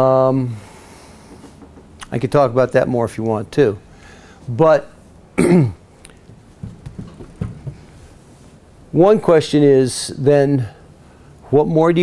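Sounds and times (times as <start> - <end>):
man clearing his throat: 5.4 - 5.8.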